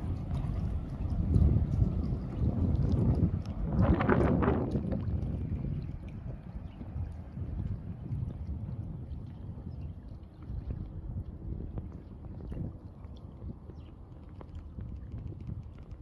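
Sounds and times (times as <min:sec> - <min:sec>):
water lapping at rocky shore: 0:00.0 - 0:16.0
wind buffeting microphone: 0:00.0 - 0:16.0.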